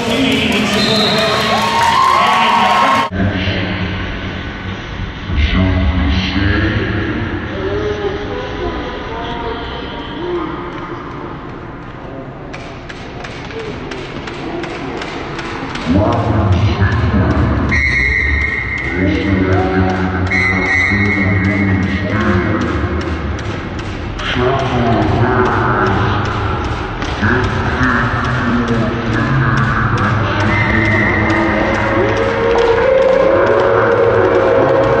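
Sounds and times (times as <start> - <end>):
referee's whistle blast: 0.7 - 1.6, 20.3 - 21.4.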